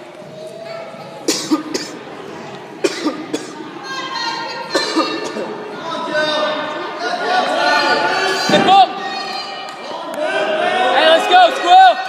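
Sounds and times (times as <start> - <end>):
person coughing: 1.3 - 2.0, 2.8 - 3.5, 4.7 - 5.5.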